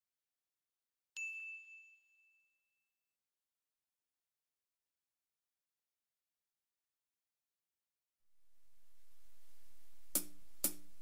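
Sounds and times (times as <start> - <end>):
bell ding ringing: 1.2 - 2.6.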